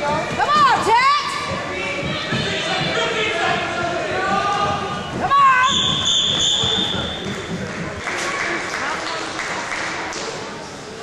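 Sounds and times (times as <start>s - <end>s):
gym crowd noise: 0.0s - 11.0s.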